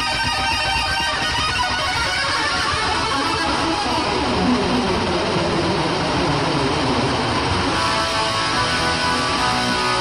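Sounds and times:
distorted electric guitar: 0.0 - 10.0
heavy rock music: 0.0 - 10.0.

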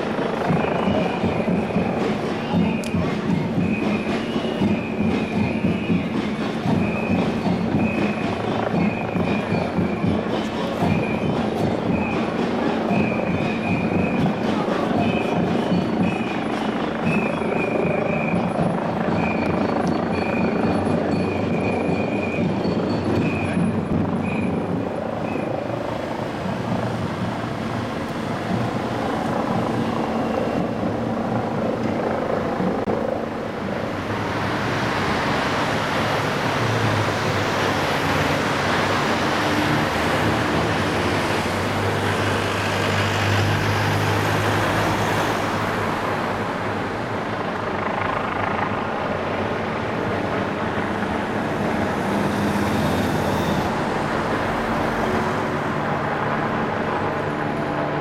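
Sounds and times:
tyres on road: 0.0 - 58.0
vehicle engines running: 0.0 - 58.0.

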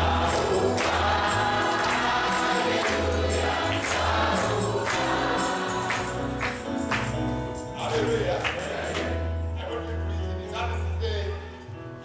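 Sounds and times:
percussion hits: 0.0 - 9.3
group singing gospel: 0.0 - 9.4.

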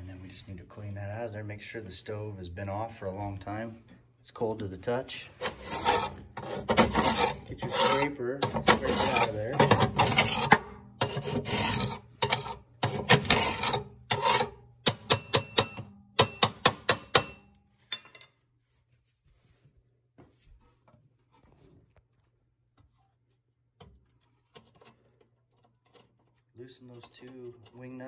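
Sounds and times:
metal scraper rasping ash: 5.3 - 17.3.

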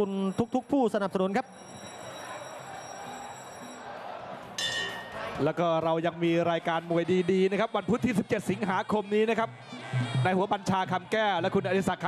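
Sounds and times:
crowd murmur: 1.6 - 11.4.

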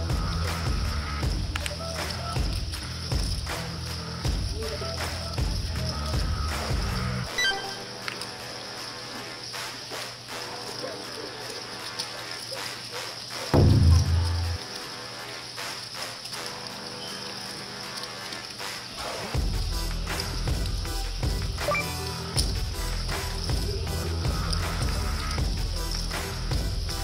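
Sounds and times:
bass-heavy music track: 0.0 - 7.4, 13.5 - 14.7, 19.4 - 27.0
background music: 0.0 - 27.0
deep descending hit: 13.6 - 14.6.

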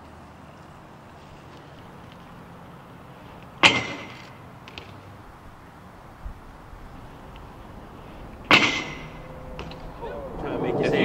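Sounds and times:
outdoor background noise: 0.0 - 11.0
loud knock with ringing tail: 8.5 - 9.7.

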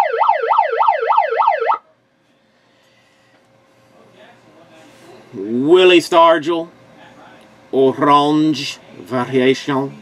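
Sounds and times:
electronic siren yelp: 0.0 - 1.8.

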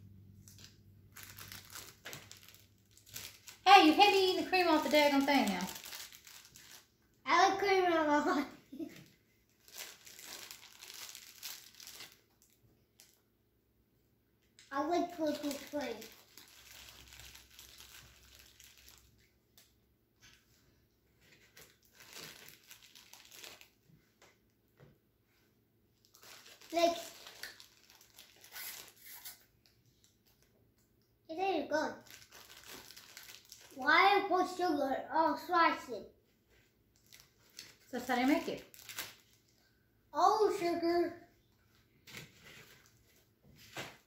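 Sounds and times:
plastic bag crinkling: 0.4 - 7.0, 8.3 - 13.2, 14.9 - 19.7, 21.2 - 23.8, 26.0 - 29.4, 32.0 - 33.8, 37.0 - 39.6
child's voice: 3.7 - 5.8, 7.3 - 9.1, 14.7 - 16.2, 26.7 - 27.4, 31.3 - 32.1, 33.8 - 36.2, 40.1 - 41.3.

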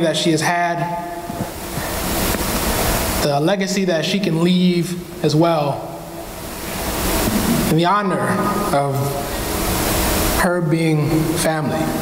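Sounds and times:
rush of noise on microphone: 0.0 - 12.0.

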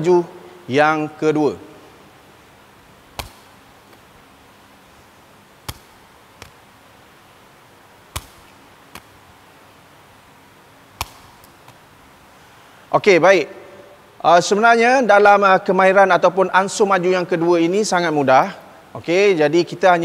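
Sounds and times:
ball headed sharp knock: 3.1 - 3.6, 5.6 - 6.6, 8.1 - 9.1, 11.0 - 11.8
ball caught in hands tap: 3.2 - 3.5, 5.6 - 6.6, 8.2 - 9.1.

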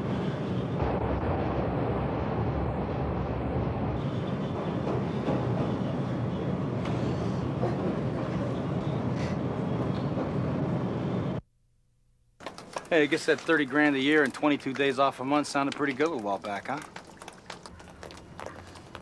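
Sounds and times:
moving bus rumble: 0.0 - 11.4.

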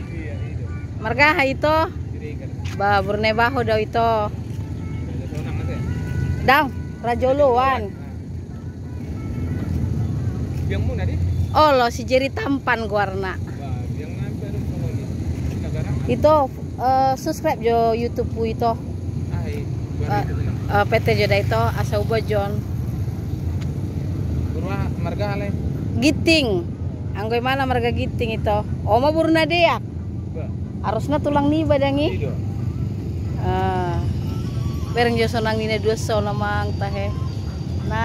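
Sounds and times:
low rumble of road vehicles: 0.0 - 38.0.

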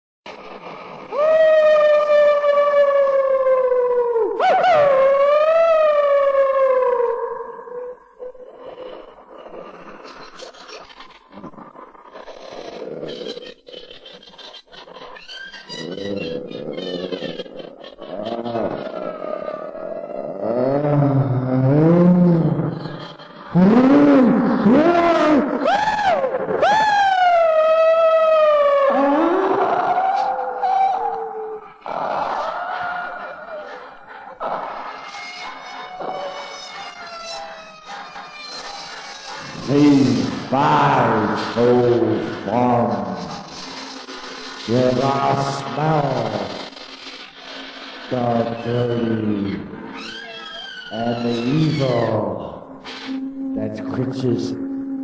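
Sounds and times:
wolf-like howls: 0.3 - 13.5, 14.8 - 43.6, 48.1 - 55.0
low wavering moan: 52.6 - 55.0.

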